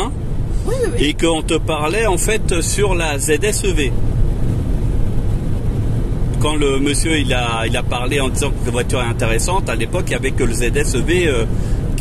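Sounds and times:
tyres rumbling on road: 0:00.0 - 0:12.0.

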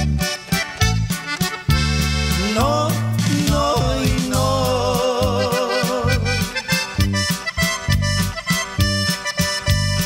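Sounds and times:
accordion sustained notes: 0:00.0 - 0:10.0
bass and drum beat: 0:00.0 - 0:10.0.

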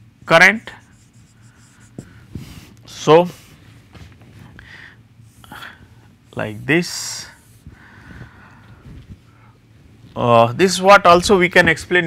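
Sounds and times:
marker scratching on whiteboard: 0:00.6 - 0:02.8.

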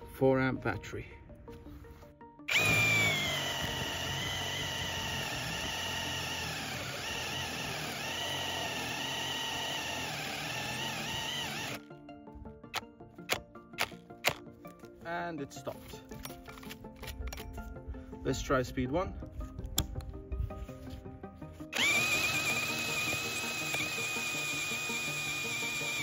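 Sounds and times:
hammer drill boring into wood: 0:02.5 - 0:11.8, 0:13.3 - 0:14.4, 0:21.7 - 0:26.0.

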